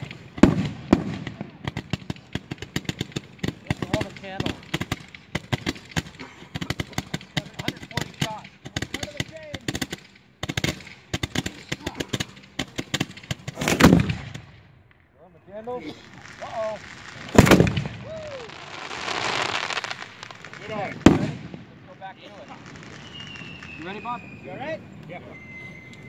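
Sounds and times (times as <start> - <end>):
firework booms: 0.0 - 15.0, 15.8 - 24.9
fireworks bangs and pops: 0.0 - 26.0.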